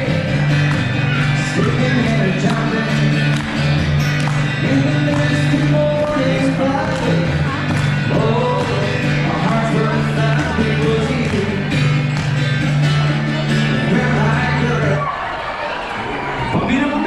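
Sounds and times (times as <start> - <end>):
amplified guitar: 0.0 - 15.3
man singing: 1.1 - 3.5, 4.3 - 12.2, 13.1 - 15.1.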